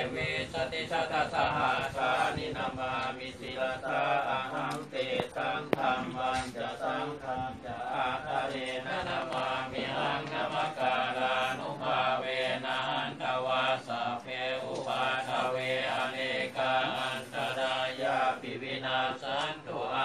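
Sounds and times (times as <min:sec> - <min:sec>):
monks chanting: 0:00.0 - 0:20.0.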